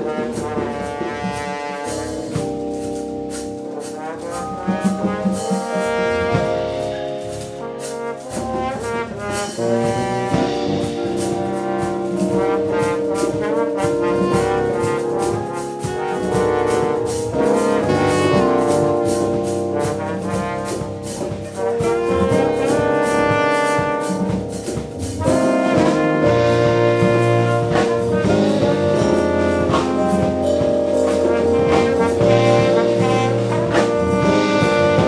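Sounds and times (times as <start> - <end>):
conga drums: 0.0 - 35.0
drum kit beating: 0.0 - 35.0
held melody notes: 0.0 - 35.0.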